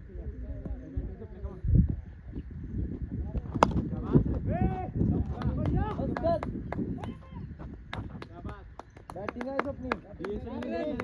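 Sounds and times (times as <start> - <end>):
wind buffeting microphone: 0.0 - 11.0
cricket bat striking ball: 3.5 - 4.0.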